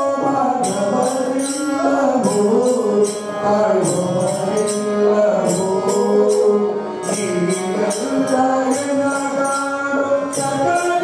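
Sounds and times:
harmonium drone: 0:00.0 - 0:11.0
hand cymbals jingling: 0:00.6 - 0:11.0.

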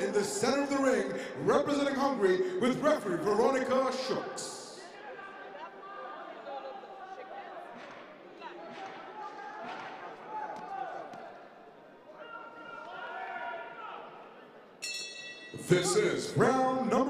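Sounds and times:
indistinct voices in a hall: 0:00.0 - 0:17.0
ring bell struck: 0:14.8 - 0:16.1.

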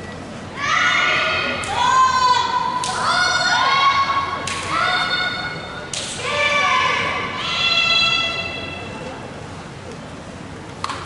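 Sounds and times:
young women shouting kiai calls: 0:00.6 - 0:08.8.

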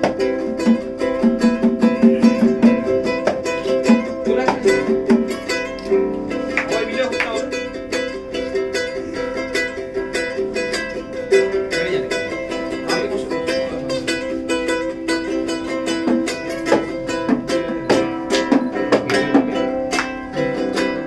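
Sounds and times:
small string instrument strummed: 0:00.0 - 0:21.0.

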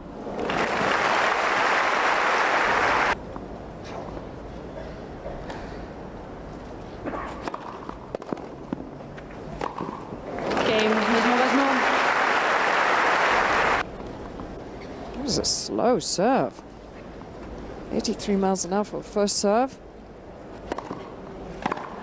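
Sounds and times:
crowd applause: 0:00.4 - 0:03.2, 0:10.6 - 0:13.8
racket striking tennis ball: 0:07.0 - 0:08.8, 0:09.6 - 0:10.6, 0:20.6 - 0:22.0.

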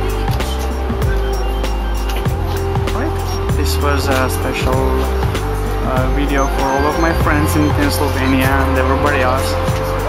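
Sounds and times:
deep held bass: 0:00.0 - 0:10.0.

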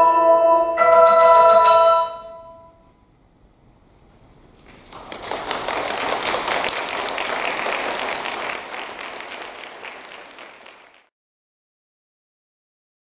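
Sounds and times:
audience applauding: 0:04.6 - 0:11.1.

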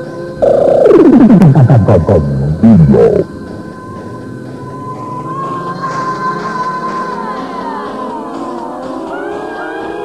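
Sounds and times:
held high synthesizer tone: 0:00.4 - 0:03.3
synthesizer sliding tones: 0:00.4 - 0:03.3.

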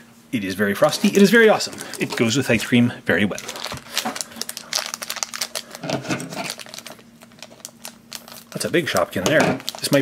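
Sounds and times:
plastic wrapper crinkling: 0:00.8 - 0:10.0.

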